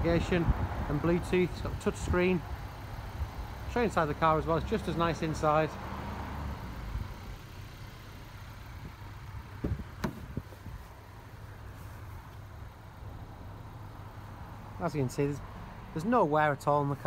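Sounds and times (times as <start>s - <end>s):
car door handle clicks: 9.6s - 10.4s
car door thump: 9.6s - 10.6s.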